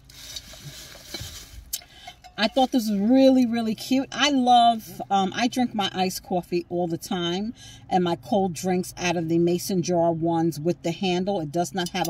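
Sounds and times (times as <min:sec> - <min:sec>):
rustling and handling noise: 0:00.0 - 0:02.8.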